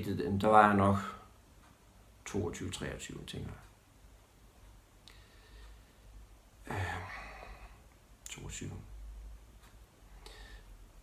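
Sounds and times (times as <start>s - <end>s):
man sighing uhh: 6.6s - 7.8s.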